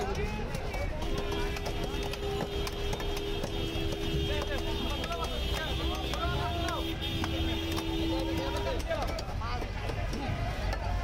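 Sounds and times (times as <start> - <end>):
background voices talking: 0.0 - 11.0.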